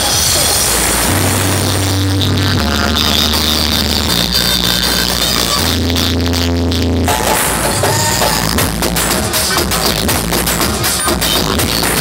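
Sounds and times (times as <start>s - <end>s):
electronic dance music: 0.0s - 12.0s
deep bass notes: 0.6s - 12.0s.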